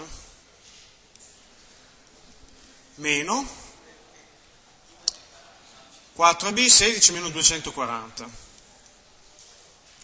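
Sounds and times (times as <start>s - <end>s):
faint room hiss: 0.0s - 10.0s.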